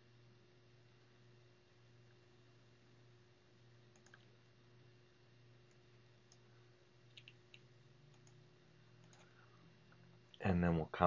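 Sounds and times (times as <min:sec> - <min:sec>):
low steady hum: 0:00.0 - 0:11.0
computer mouse clicks: 0:03.9 - 0:04.3, 0:07.1 - 0:08.4, 0:09.0 - 0:09.4.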